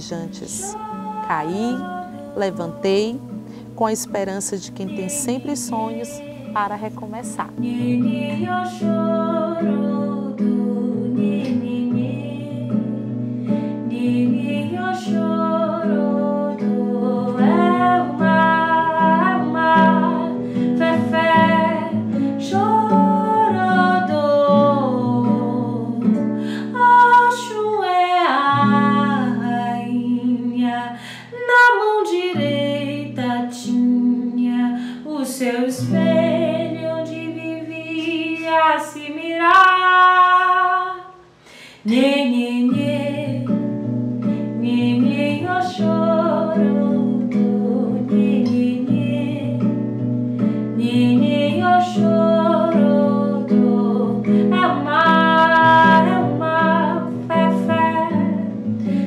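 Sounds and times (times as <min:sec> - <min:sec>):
woman singing: 0:00.0 - 0:13.1, 0:13.7 - 0:49.9, 0:50.7 - 0:59.0
classical guitar: 0:00.0 - 0:59.0.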